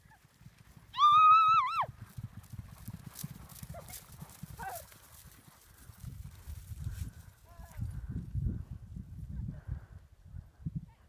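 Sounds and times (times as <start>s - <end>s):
distant horse galloping: 0.0s - 7.2s
wind rumble on microphone: 1.1s - 11.0s.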